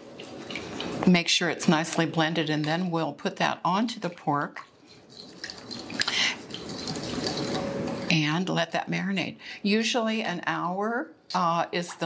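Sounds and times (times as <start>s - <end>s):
utensil stirring liquid in glass bowl: 0.0s - 8.2s.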